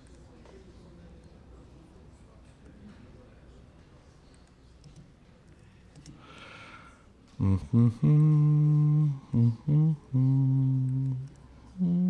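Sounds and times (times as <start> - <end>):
man humming: 7.4 - 12.0.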